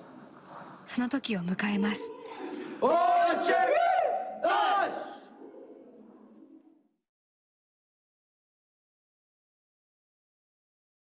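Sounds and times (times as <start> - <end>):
men shouting in unison: 2.2 - 5.3.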